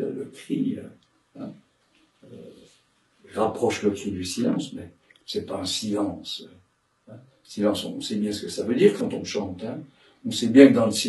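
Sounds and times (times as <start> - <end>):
man murmuring hesitation: 0.0 - 0.9, 2.3 - 2.6, 3.4 - 6.5, 7.5 - 11.0
man speaking: 0.0 - 1.5, 2.3 - 2.6, 3.3 - 6.5, 7.5 - 11.0.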